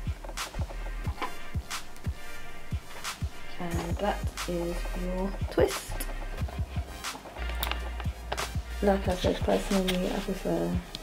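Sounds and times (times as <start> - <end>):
music with deep bass and drums: 0.0 - 11.0.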